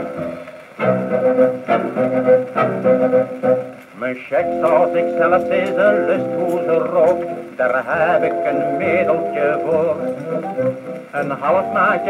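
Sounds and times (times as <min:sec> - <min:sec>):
band playing sustained chords: 0:10.2 - 0:12.0.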